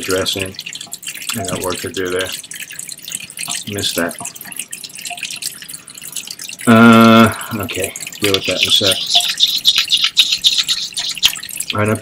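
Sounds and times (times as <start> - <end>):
tap water running into steel sink: 0.0 - 12.0.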